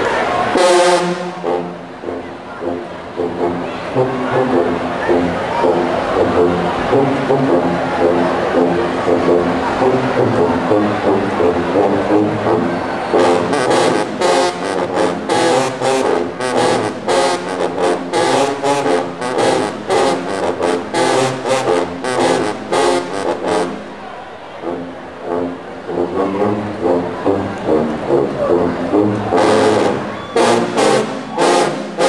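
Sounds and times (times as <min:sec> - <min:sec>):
sousaphones playing low brass riff: 0:00.4 - 0:24.0, 0:24.6 - 0:32.0.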